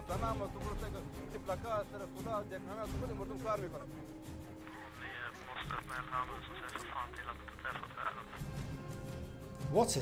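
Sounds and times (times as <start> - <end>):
background music with low tone: 0.0 - 10.0.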